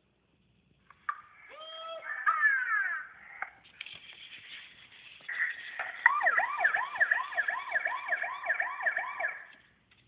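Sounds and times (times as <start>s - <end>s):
police siren yelp: 5.3s - 9.6s.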